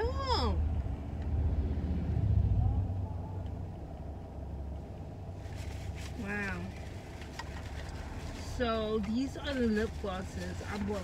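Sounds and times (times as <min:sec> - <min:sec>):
car passing by: 0:00.6 - 0:03.5.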